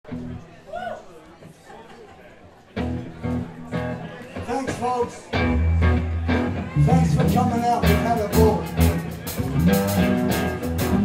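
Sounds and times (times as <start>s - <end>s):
live band loud low chords: 2.8s - 11.0s.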